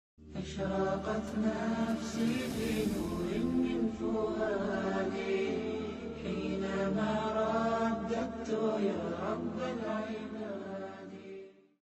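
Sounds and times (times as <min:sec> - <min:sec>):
melodic vocal chanting: 0:00.2 - 0:11.8.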